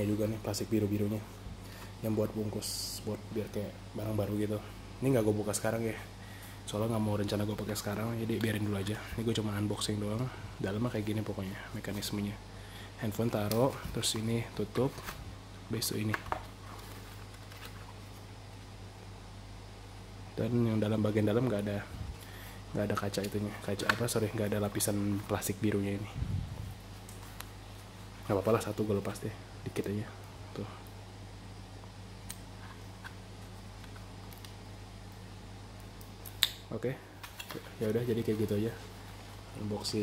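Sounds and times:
steady low hum: 0.0 - 40.0
plastic headset being handled: 16.0 - 18.3.

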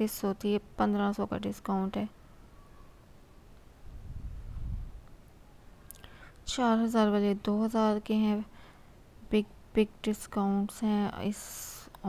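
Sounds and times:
low muffled rumble: 3.8 - 5.1.

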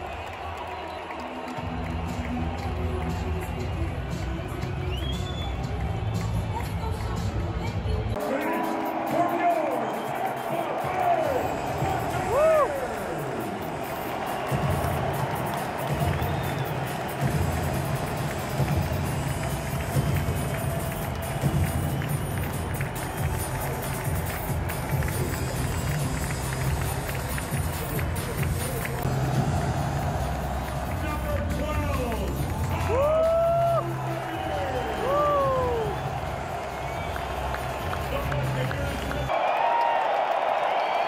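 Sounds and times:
stadium music with heavy beat: 0.0 - 39.4
large crowd noise: 0.0 - 41.0.

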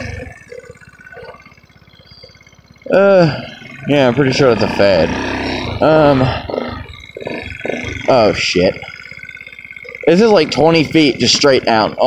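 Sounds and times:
scooter engine puttering: 0.0 - 12.0
person talking: 2.9 - 5.2.

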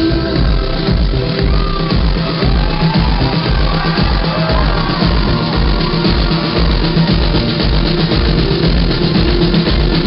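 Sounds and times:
live band playing dance-pop: 0.0 - 10.0.

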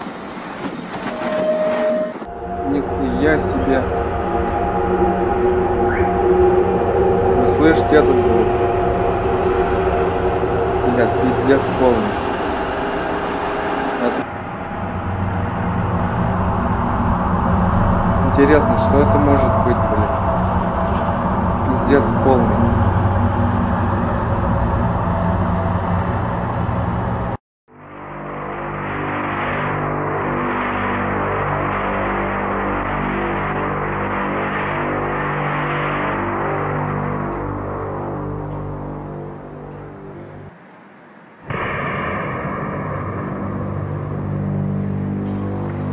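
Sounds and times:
rising and falling wails: 0.0 - 45.9
wavering drone: 0.0 - 45.9
droning low tones: 1.9 - 40.6, 41.4 - 45.9.

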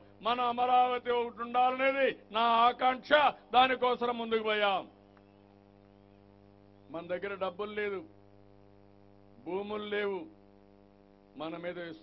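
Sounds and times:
man speaking into microphones: 0.0 - 5.0, 6.8 - 8.2, 9.4 - 10.4, 11.3 - 12.0
electrical mains hum: 0.0 - 12.0.

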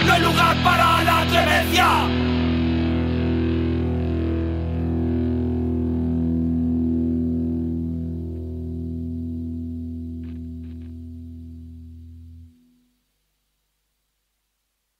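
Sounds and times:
distorted electric guitar chord: 0.0 - 12.8.

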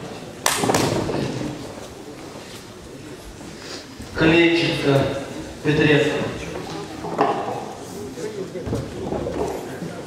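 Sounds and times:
sharp thump in a large hall: 0.4 - 1.6.

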